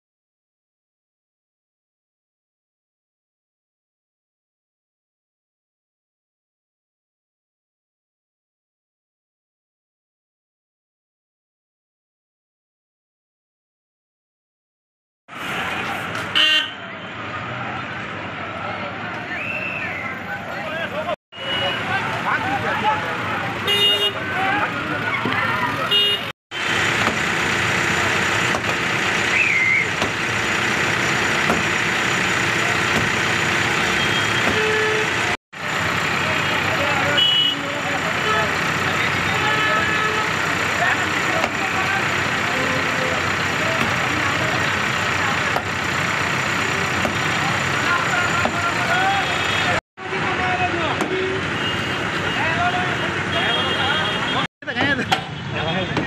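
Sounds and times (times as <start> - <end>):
passing vehicles: 15.3 - 56.0
many people talking: 15.5 - 26.3, 36.2 - 45.6, 46.7 - 51.5, 52.2 - 56.0.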